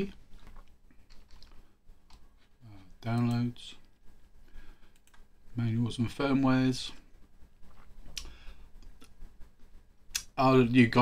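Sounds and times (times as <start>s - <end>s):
low room hum: 0.0s - 11.0s
computer mouse clicking: 0.4s - 2.2s, 3.0s - 3.5s, 4.9s - 5.3s.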